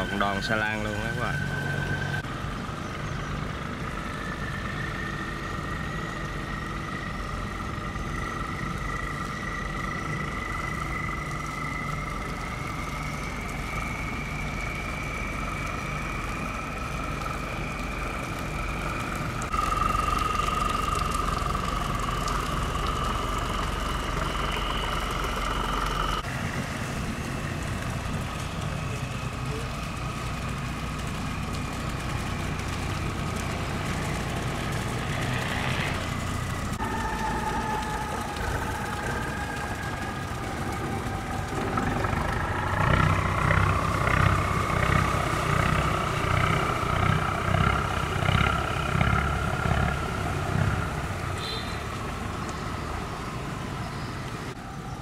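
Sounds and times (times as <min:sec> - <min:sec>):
barge engines droning: 0:00.0 - 0:55.0
high engine whine: 0:00.0 - 0:55.0.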